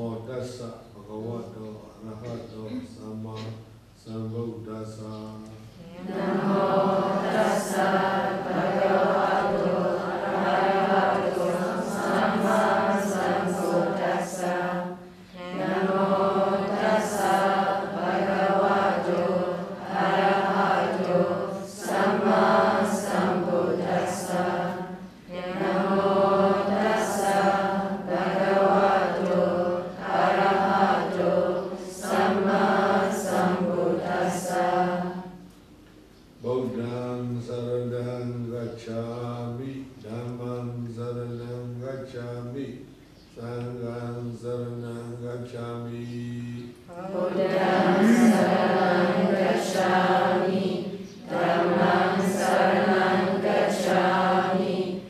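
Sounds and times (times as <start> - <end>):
women chanting in unison: 5.8 - 35.4, 46.9 - 55.0.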